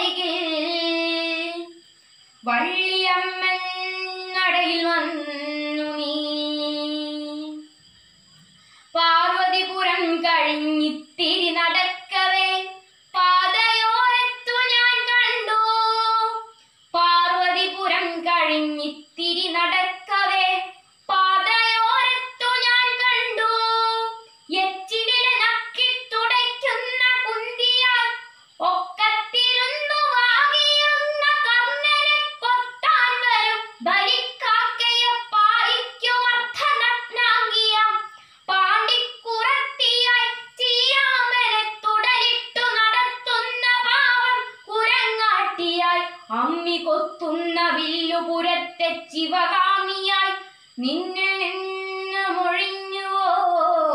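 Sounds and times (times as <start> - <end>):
girl chanting a sung poem: 0.0 - 7.8, 8.9 - 53.9.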